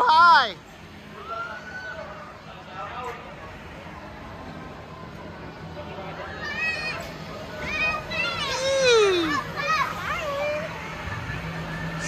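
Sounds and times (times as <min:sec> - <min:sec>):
children shouting and squealing: 0:06.1 - 0:12.0.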